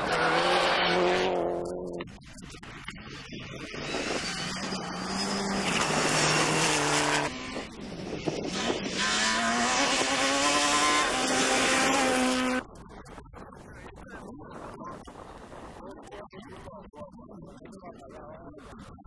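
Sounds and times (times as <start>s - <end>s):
rally car engines revving: 0.0s - 12.8s.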